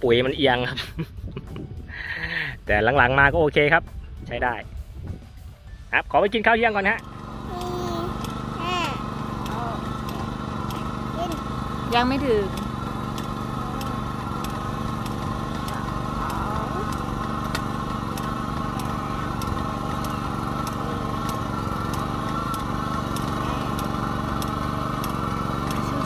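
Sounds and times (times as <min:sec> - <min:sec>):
rice transplanter engine running: 0:06.4 - 0:26.0
light regular ticking: 0:07.0 - 0:26.0.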